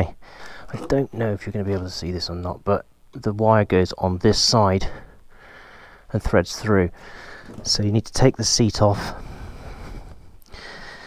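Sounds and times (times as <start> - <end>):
man breathing: 0.2 - 0.7, 4.8 - 6.2, 6.9 - 7.7, 9.0 - 11.0.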